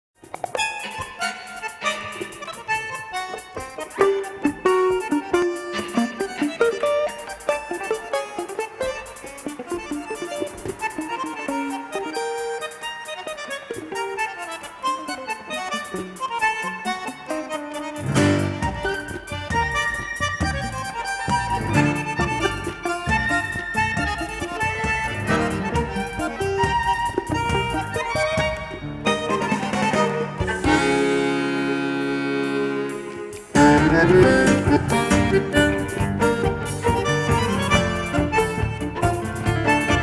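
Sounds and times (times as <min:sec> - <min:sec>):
bandoneon: 0:00.2 - 0:40.0
violin: 0:00.3 - 0:40.0
piano: 0:17.4 - 0:40.0.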